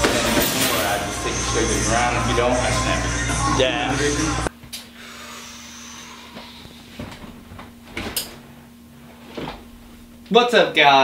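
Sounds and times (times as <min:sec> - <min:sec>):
steady low hum: 0:00.0 - 0:11.0
chair knocks and rustles: 0:07.0 - 0:08.4, 0:09.2 - 0:10.0.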